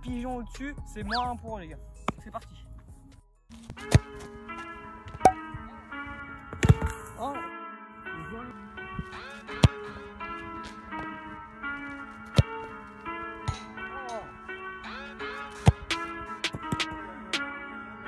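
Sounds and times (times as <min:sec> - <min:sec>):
background music with melody: 0:00.0 - 0:18.0
football kicked hard: 0:03.7 - 0:07.2, 0:09.5 - 0:12.8, 0:15.4 - 0:17.0.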